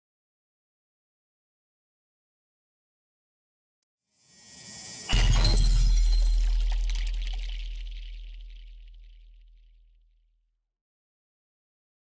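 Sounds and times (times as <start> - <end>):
glass shattering: 5.1 - 8.1
deep boom: 5.1 - 9.5.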